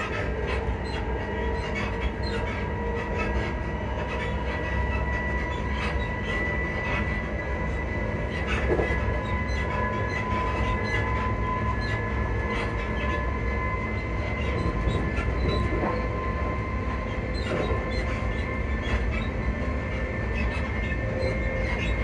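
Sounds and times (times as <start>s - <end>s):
passenger train running: 0.0s - 22.0s.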